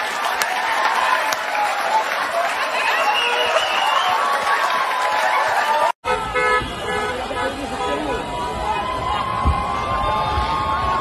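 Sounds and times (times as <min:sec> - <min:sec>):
crowd applauding and cheering: 0:00.0 - 0:06.0, 0:08.4 - 0:11.0
street crowd noise: 0:00.0 - 0:11.0
car horn: 0:06.0 - 0:08.3.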